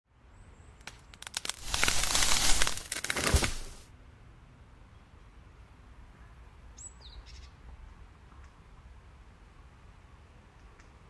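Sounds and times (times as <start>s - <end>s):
crackling and crunching: 0.9s - 3.8s.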